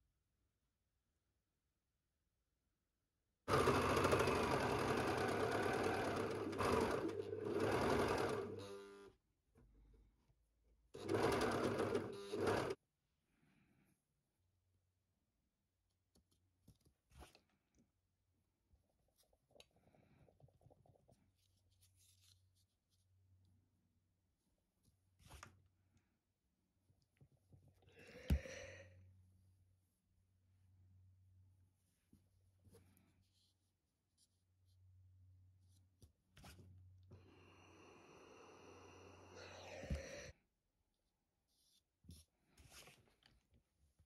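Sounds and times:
overlocker sewing machine running: 0:03.5 - 0:08.6, 0:11.0 - 0:12.8.

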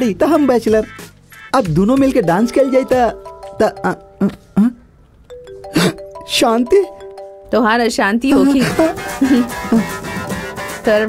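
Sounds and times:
person speaking: 0:01.6 - 0:10.0
chiming ringtone melody: 0:02.0 - 0:04.7, 0:05.3 - 0:10.1.

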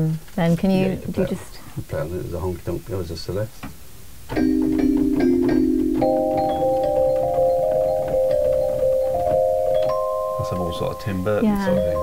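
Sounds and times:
celesta melody: 0:04.4 - 0:12.0.

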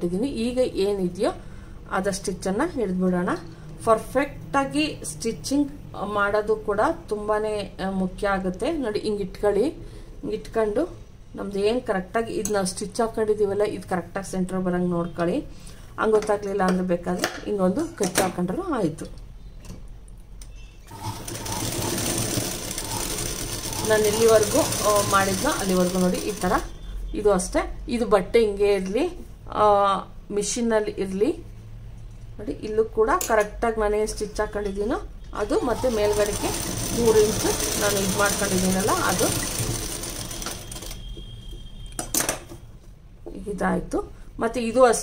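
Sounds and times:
sewing machine running: 0:20.9 - 0:26.7, 0:35.5 - 0:41.1.

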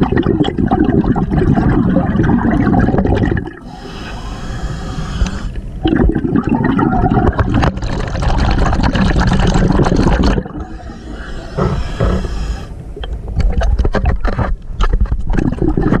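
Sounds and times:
water gurgling and bubbling: 0:00.0 - 0:14.2, 0:15.2 - 0:16.0
crackles and knocks: 0:07.2 - 0:16.0.

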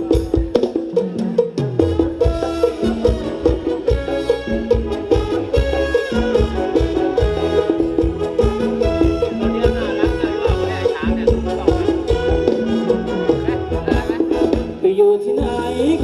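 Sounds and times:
dance band playing upbeat music: 0:00.0 - 0:16.0
steady drum beat: 0:00.0 - 0:16.0
sliding bass line: 0:01.8 - 0:16.0.

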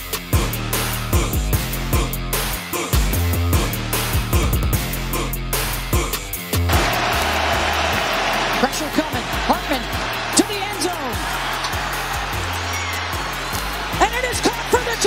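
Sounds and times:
background music: 0:00.0 - 0:15.0
stadium crowd roar: 0:06.7 - 0:15.0
voices cheering: 0:06.7 - 0:15.0.

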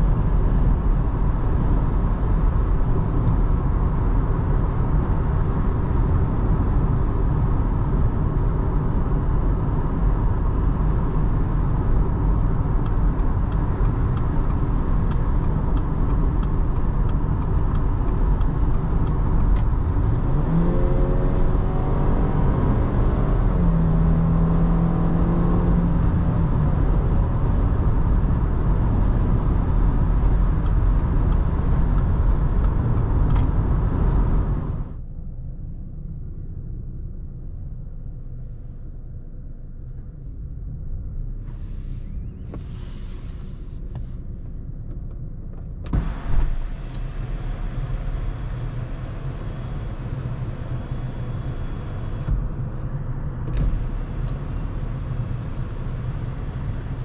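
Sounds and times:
car engine running: 0:00.0 - 0:57.0.

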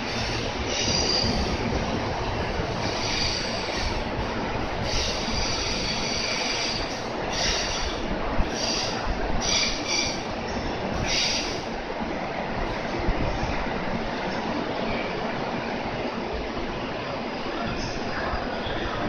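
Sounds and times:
train wheel and rail noise: 0:00.0 - 0:19.0.

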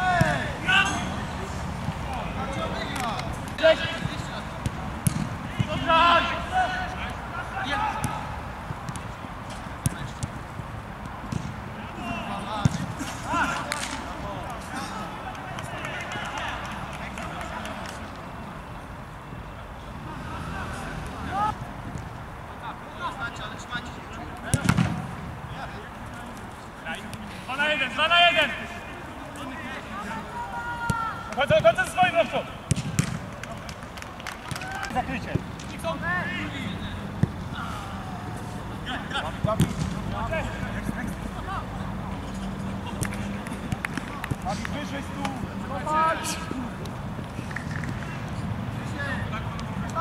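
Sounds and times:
football being kicked: 0:04.0 - 0:05.8, 0:11.2 - 0:11.6, 0:24.5 - 0:25.1, 0:32.7 - 0:33.3, 0:39.4 - 0:40.0.

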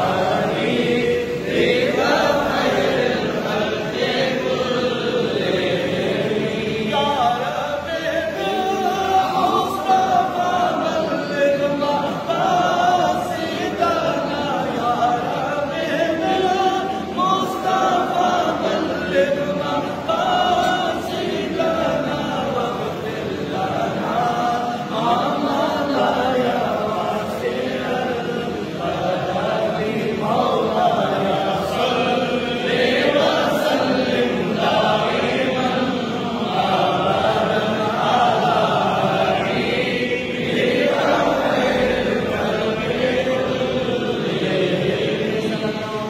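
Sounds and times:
men chanting in unison: 0:00.0 - 0:46.0.

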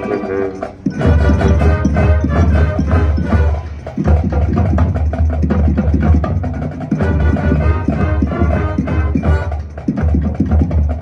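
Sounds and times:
marching band playing: 0:00.0 - 0:11.0
quick percussion strikes: 0:00.0 - 0:11.0.

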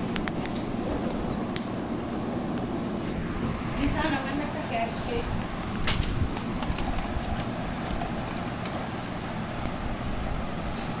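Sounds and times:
brief hiss: 0:10.7 - 0:11.0.

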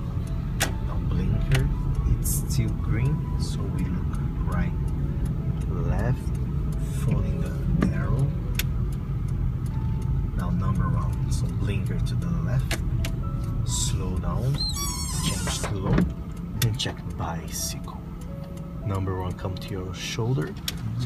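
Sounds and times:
car engine and road rumble: 0:00.0 - 0:21.0
light ticks: 0:00.2 - 0:14.7, 0:15.4 - 0:21.0
short squealing chirp: 0:14.6 - 0:15.5.

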